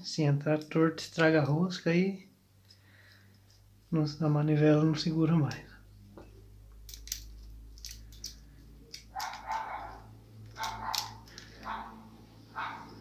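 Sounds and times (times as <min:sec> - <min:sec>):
metal reel parts clicking: 0:06.8 - 0:11.8
dog barking: 0:09.1 - 0:13.0.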